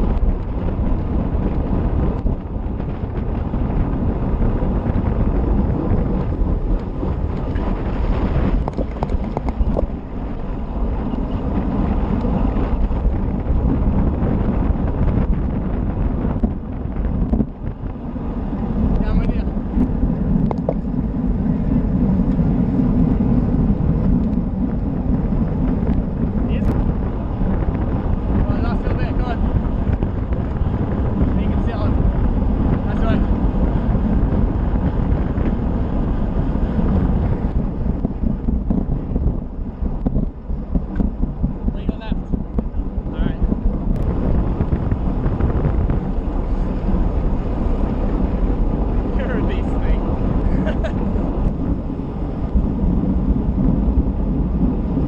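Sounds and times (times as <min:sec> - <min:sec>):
tyre and road rumble: 0:00.0 - 0:55.0
wind buffeting microphone: 0:00.0 - 0:55.0.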